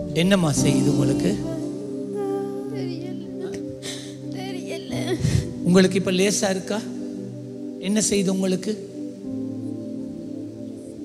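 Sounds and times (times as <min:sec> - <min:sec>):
sustained worship music chord: 0:00.0 - 0:11.0.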